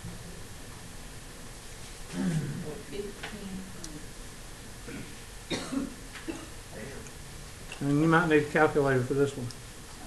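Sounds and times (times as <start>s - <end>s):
faint room noise: 0.0s - 10.0s
person coughing: 2.1s - 2.6s, 4.9s - 6.6s.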